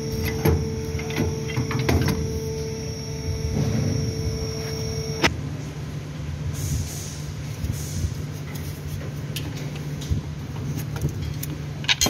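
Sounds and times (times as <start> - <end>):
steady higher tone: 0.0 - 5.4
steady low hum: 0.0 - 11.9
metal parts clicking and knocking: 11.1 - 12.0.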